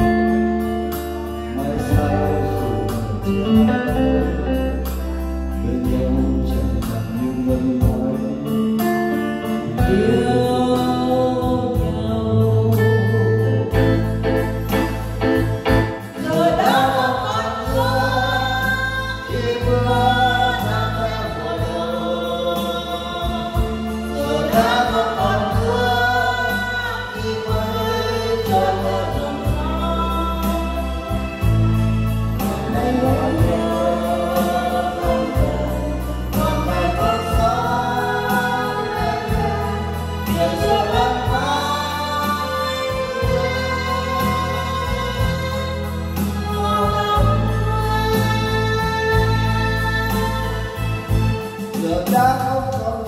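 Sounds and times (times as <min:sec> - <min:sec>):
electronic keyboard: 0:00.0 - 0:53.0
man and woman singing duet: 0:00.0 - 0:53.0
steady bass line: 0:00.0 - 0:53.0.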